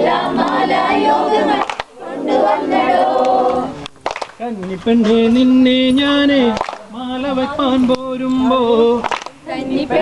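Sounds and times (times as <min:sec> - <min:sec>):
group singing unaccompanied: 0:00.0 - 0:03.9, 0:05.2 - 0:10.0
sharp hand clap: 0:01.6 - 0:02.0, 0:03.2 - 0:04.8, 0:06.5 - 0:06.9, 0:09.0 - 0:09.4.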